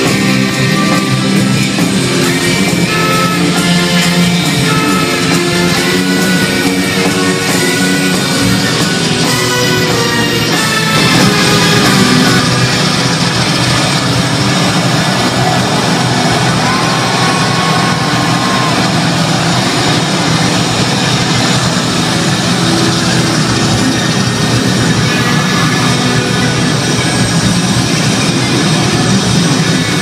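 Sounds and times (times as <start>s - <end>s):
crowd noise: 0.0s - 30.0s
live rock band playing: 0.0s - 30.0s.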